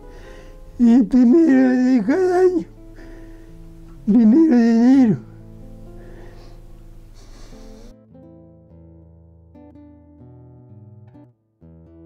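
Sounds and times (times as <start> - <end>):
quiet instrumental music: 0.0 - 12.0
old man speaking: 0.8 - 2.7, 4.0 - 5.3.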